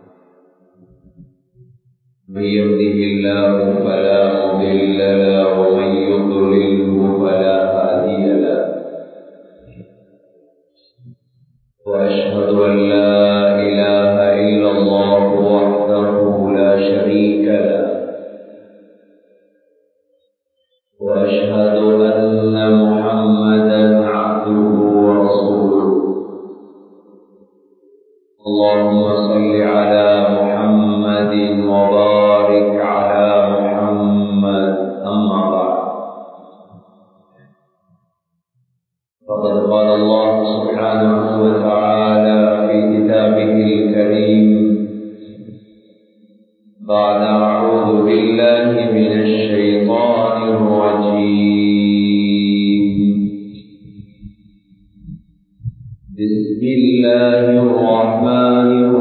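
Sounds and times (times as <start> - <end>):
man chanting a long note: 2.3 - 8.7, 11.9 - 17.9, 21.0 - 26.1, 28.4 - 36.0, 39.3 - 45.6, 46.8 - 53.3, 56.1 - 59.0.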